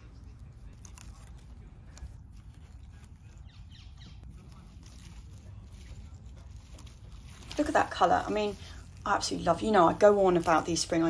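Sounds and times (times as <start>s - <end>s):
rustling of leaves and soil: 0.0s - 11.0s.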